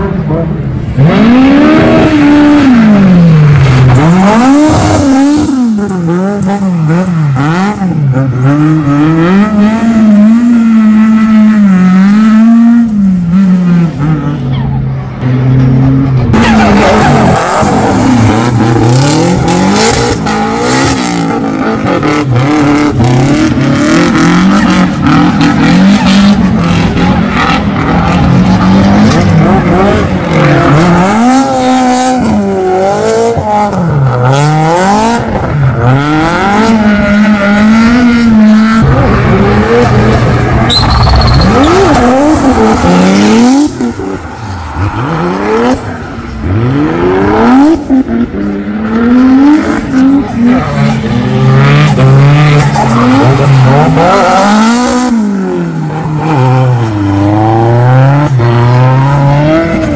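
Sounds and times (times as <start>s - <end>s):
car engines revving: 0.0s - 59.9s
tyre squeal: 40.6s - 43.4s.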